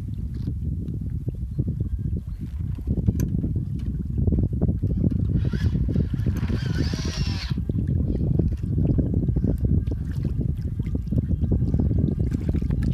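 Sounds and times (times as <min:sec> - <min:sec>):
wind buffeting microphone: 0:00.0 - 0:12.9
water lapping: 0:01.8 - 0:12.9.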